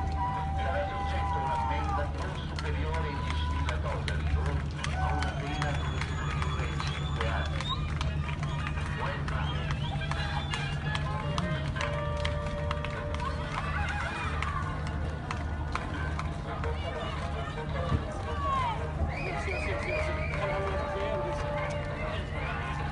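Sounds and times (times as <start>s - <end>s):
boat engine humming: 0.0s - 22.9s.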